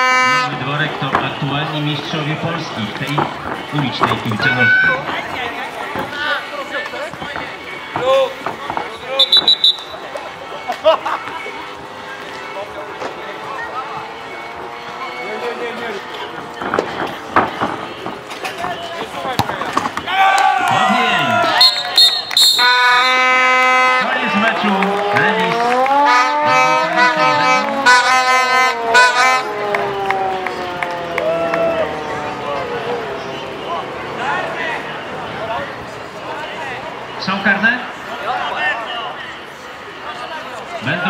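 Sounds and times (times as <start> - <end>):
held brass note: 0.0 - 0.6, 21.6 - 24.3, 25.8 - 29.6
brass tune with sliding notes: 0.0 - 0.8, 21.6 - 30.5
spectators and players shouting: 0.0 - 41.0.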